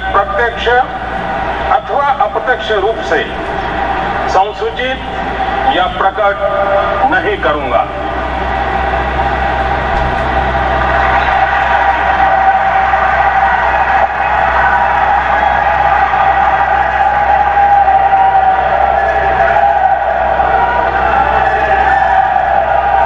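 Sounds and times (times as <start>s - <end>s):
audience applauding: 0.0s - 23.0s.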